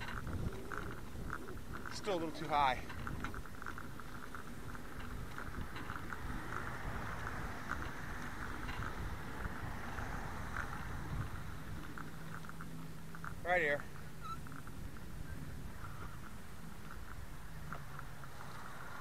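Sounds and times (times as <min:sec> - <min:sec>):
bicycle rolling on pavement: 0:00.0 - 0:19.0
bike clicks and rattles: 0:00.0 - 0:19.0
wind: 0:00.0 - 0:19.0.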